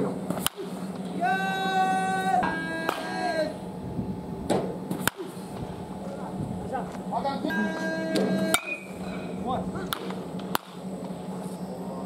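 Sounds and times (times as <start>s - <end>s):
steady low hum: 0.0s - 12.0s
baseball bat cracking ball: 0.3s - 1.0s, 2.5s - 3.2s, 4.5s - 5.4s, 8.1s - 8.9s, 9.9s - 10.8s.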